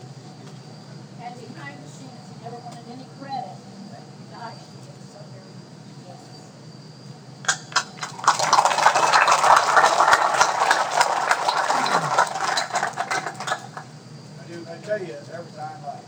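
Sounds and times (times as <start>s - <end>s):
crowd applauding: 7.5s - 13.9s.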